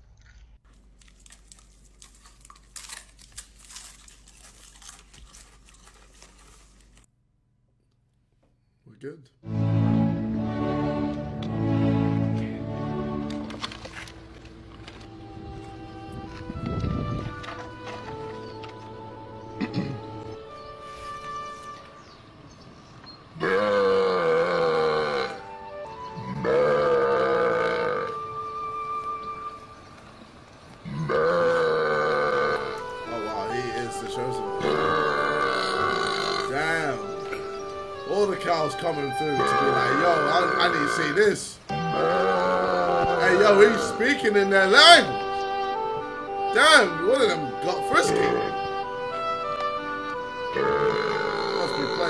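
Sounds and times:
person chewing crunchy food: 0:00.0 - 0:07.1
faint background music: 0:08.9 - 0:52.0
low moo-like calls: 0:23.4 - 0:28.5, 0:30.8 - 0:37.6, 0:39.2 - 0:44.0, 0:47.6 - 0:48.9, 0:50.5 - 0:52.0.

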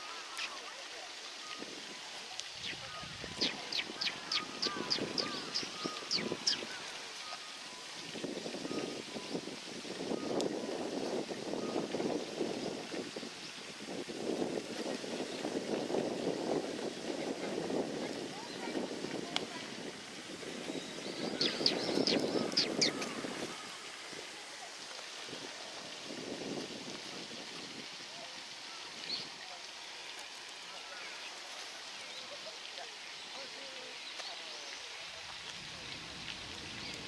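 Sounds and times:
sparrows chirping: 0:02.6 - 0:07.5, 0:20.6 - 0:23.4.

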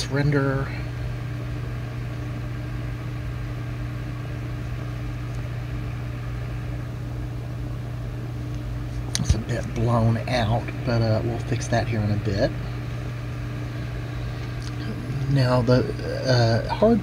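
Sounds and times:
electric fan humming: 0:00.0 - 0:17.0.

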